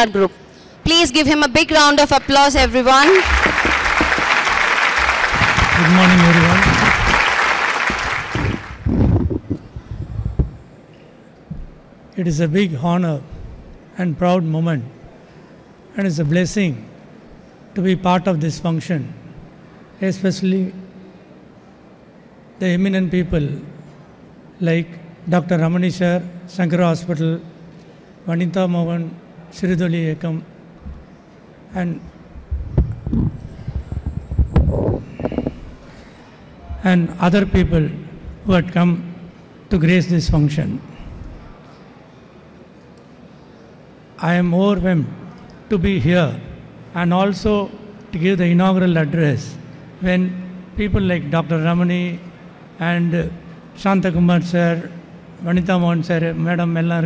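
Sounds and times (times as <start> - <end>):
room hum: 0.0 - 57.0
microphone being handled: 8.3 - 10.6, 32.4 - 35.8.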